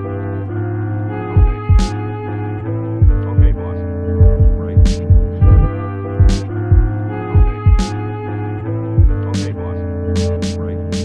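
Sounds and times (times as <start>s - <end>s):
sustained sampled chord: 0.0s - 10.9s
deep kick drum hits: 1.4s - 1.9s, 3.0s - 3.6s, 4.2s - 7.9s, 9.0s - 9.2s.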